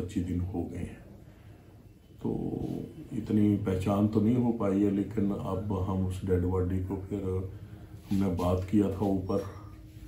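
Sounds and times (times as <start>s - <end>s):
man speaking: 0.0s - 1.1s, 2.2s - 9.8s.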